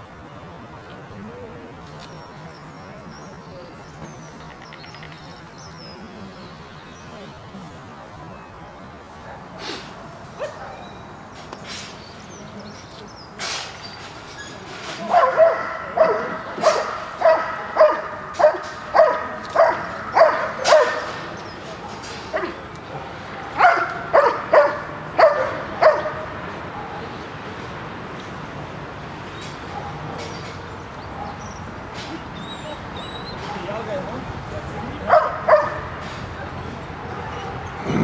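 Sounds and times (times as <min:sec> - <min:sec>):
dog yipping barks: 0:10.4 - 0:11.0, 0:15.0 - 0:21.2, 0:23.4 - 0:26.2, 0:34.8 - 0:35.9.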